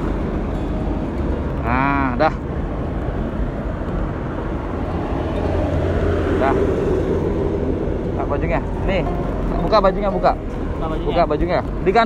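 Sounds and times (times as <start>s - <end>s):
road traffic rumbling: 0.0s - 12.0s
vehicle passing: 0.0s - 12.0s.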